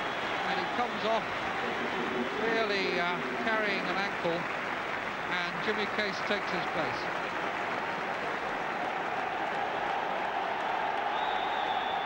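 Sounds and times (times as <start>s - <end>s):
stadium crowd applauding and cheering: 0.0s - 12.0s.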